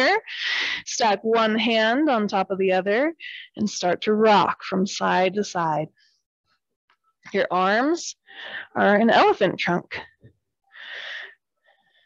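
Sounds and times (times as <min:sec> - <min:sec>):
breath close to microphone: 0:10.7 - 0:12.0.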